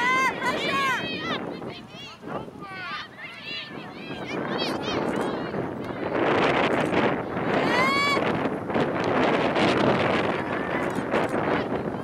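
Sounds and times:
high-pitched shout: 0.0s - 5.6s, 7.5s - 8.2s
wind on microphone: 0.0s - 12.0s.

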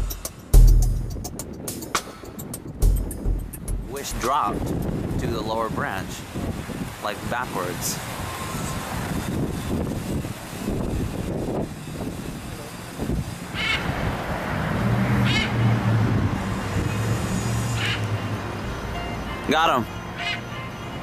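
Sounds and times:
wind rumbling on microphone: 0.5s - 18.1s
low engine hum: 8.0s - 21.0s
macaw squawks: 13.5s - 13.9s, 15.2s - 15.6s, 17.8s - 18.0s, 20.2s - 20.5s.

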